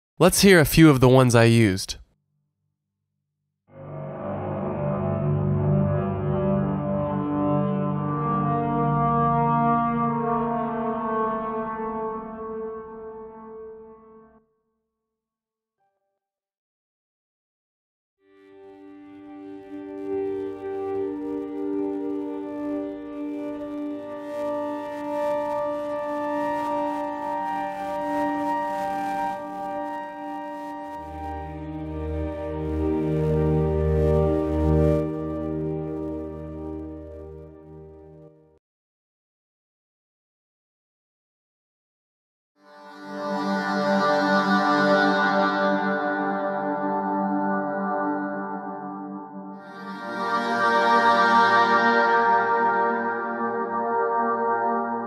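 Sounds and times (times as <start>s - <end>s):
processed choir chord: 42.8s - 55.0s.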